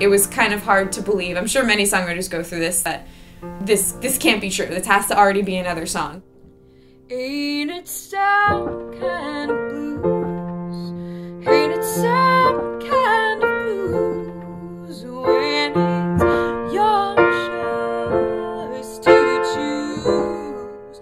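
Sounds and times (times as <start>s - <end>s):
piano chords: 0.0s - 21.0s
woman singing: 7.1s - 21.0s.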